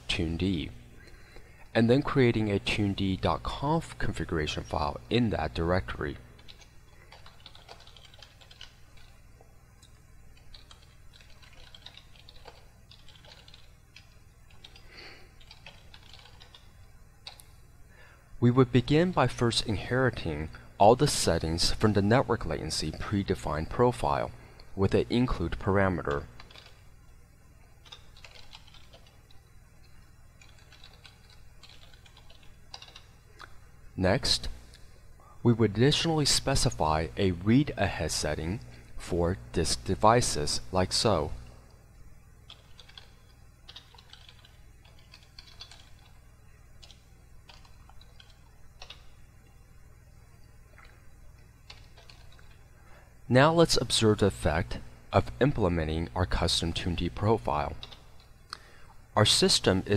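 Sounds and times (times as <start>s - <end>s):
low steady hum: 0.0s - 59.9s
typing on a keyboard: 6.4s - 9.1s, 10.4s - 14.8s, 15.4s - 16.6s, 26.1s - 26.8s, 27.8s - 29.2s, 30.4s - 33.1s, 42.5s - 46.2s, 46.8s - 49.0s, 51.7s - 52.6s, 57.8s - 58.0s
keyboard keystrokes: 10.5s - 14.8s, 26.1s - 26.8s, 30.4s - 33.1s, 51.7s - 52.5s.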